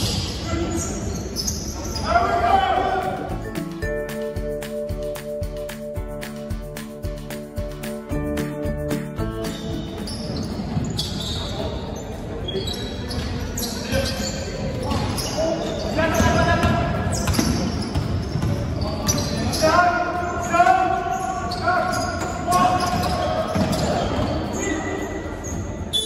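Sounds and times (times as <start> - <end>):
sneaker squeaks: 0.0 - 2.4, 9.2 - 26.0.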